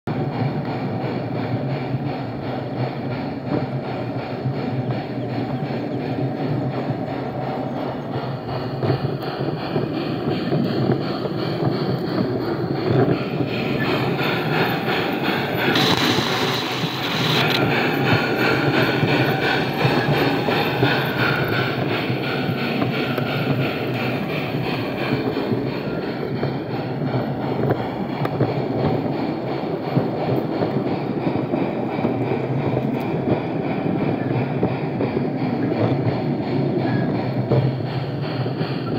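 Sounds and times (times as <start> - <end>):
wheels rolling on rails: 2.4 - 38.9.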